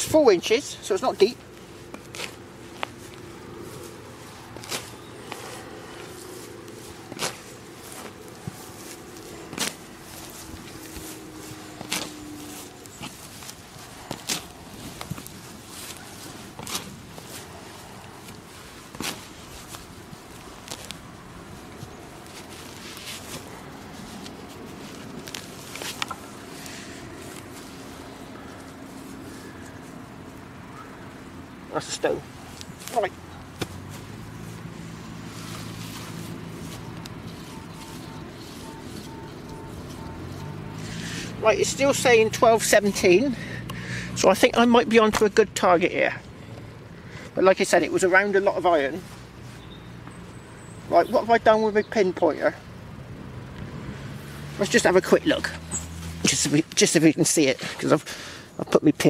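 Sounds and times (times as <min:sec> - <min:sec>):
spade digging into turf: 0:07.1 - 0:08.0.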